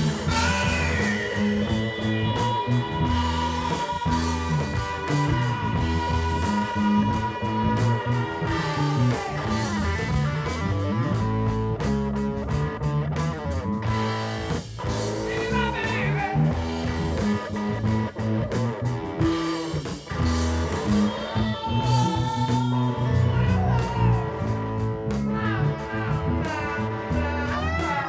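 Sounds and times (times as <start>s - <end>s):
bent guitar notes: 0.0s - 28.0s
drums: 0.0s - 28.0s
electric bass line: 0.0s - 28.0s
electric guitar: 0.0s - 28.0s.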